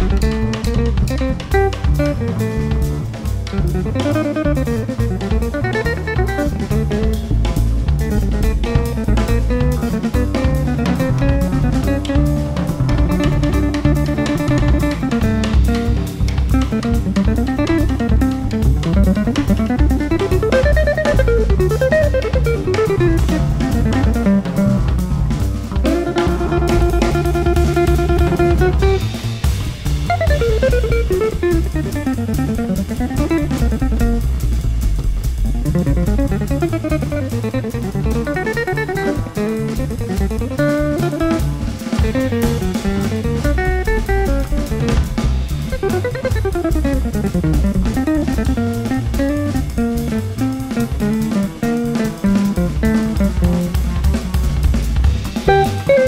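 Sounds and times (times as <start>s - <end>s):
drum kit: 0.0s - 56.0s
jazz guitar lines: 0.0s - 56.0s
upright bass: 0.0s - 56.0s.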